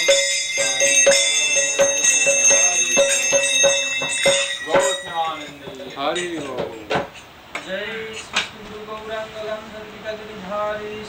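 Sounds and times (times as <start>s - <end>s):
hand bell ringing: 0.0s - 6.0s.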